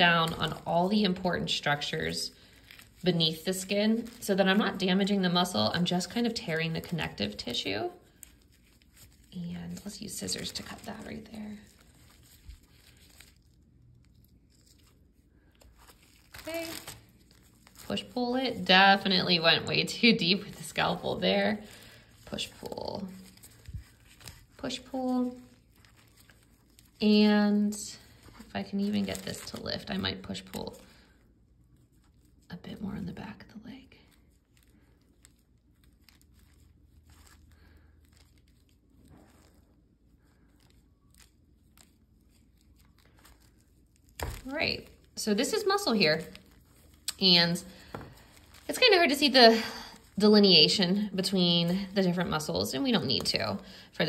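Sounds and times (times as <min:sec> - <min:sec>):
soft rustles: 0:00.0 - 0:54.0.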